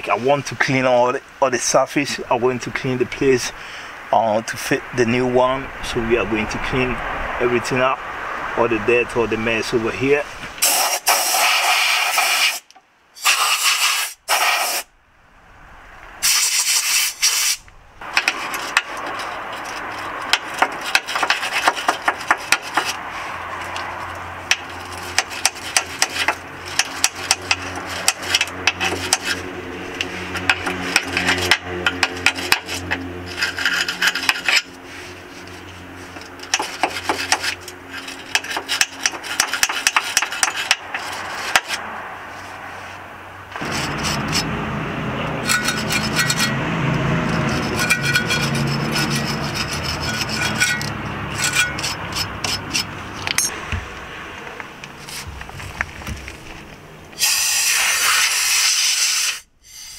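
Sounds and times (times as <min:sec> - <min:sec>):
bristle brush scrubbing metal: 0:16.2 - 0:43.0, 0:43.6 - 0:53.2, 0:57.2 - 0:59.9.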